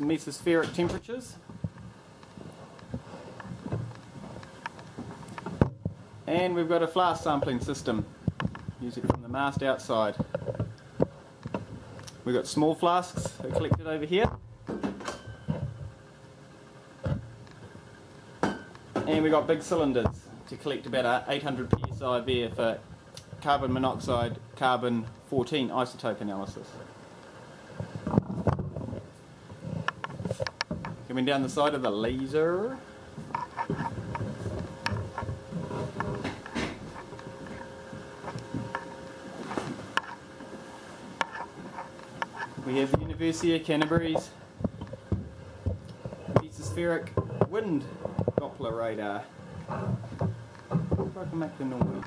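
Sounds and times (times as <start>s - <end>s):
faint steady hum: 0.0s - 52.0s
footsteps in a room: 0.7s - 13.9s, 32.9s - 52.0s.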